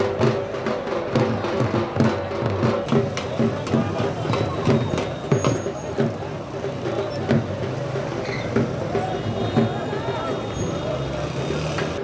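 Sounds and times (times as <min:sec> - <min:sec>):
people talking: 0:01.1 - 0:07.8, 0:08.8 - 0:11.5
motorcycle engines running: 0:02.9 - 0:12.0.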